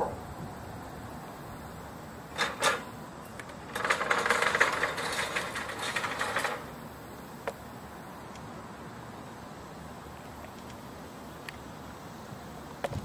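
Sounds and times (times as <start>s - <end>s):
cordless drill rattling: 2.4s - 6.8s.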